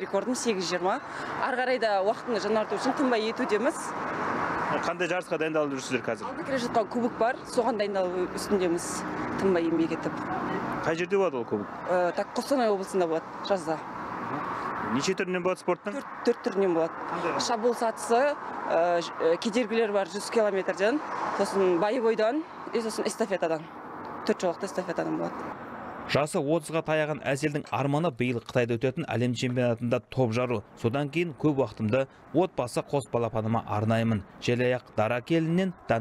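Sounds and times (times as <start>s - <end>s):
woman speaking: 0.0s - 4.0s, 6.2s - 10.6s, 11.8s - 14.4s, 16.0s - 25.4s
background noise: 0.0s - 36.0s.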